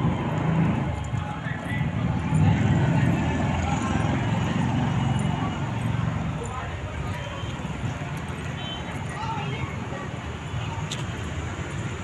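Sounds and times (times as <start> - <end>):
faint indistinct voices: 0.5 - 11.4.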